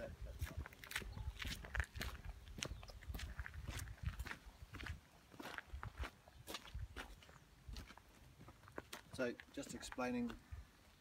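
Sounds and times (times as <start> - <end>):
footsteps on gravel: 0.2 - 10.5.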